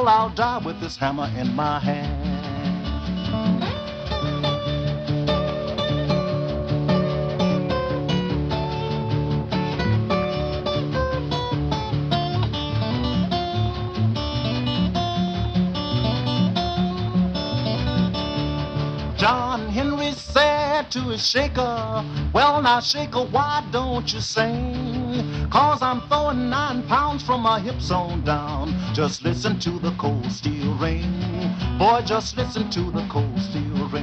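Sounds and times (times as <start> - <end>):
man singing: 0.0 - 3.2, 19.2 - 34.0
acoustic guitar picking: 0.0 - 34.0.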